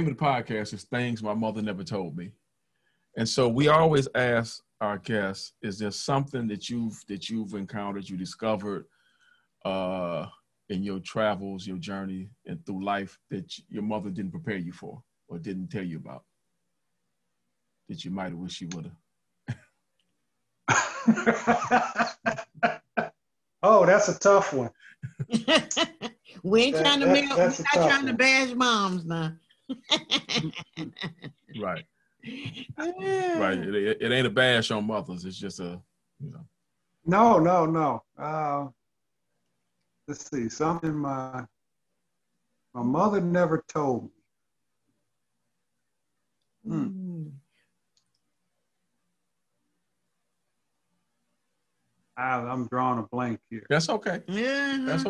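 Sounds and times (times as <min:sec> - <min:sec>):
man saying hmm: 0:03.2 - 0:08.8, 0:09.7 - 0:14.8, 0:26.8 - 0:28.1, 0:33.0 - 0:36.4, 0:37.4 - 0:38.7, 0:46.7 - 0:47.0
laughter: 0:20.7 - 0:23.1
throat sound: 0:21.3 - 0:23.1, 0:23.7 - 0:25.4, 0:31.6 - 0:31.8, 0:32.4 - 0:35.0, 0:36.2 - 0:36.4, 0:46.7 - 0:47.4.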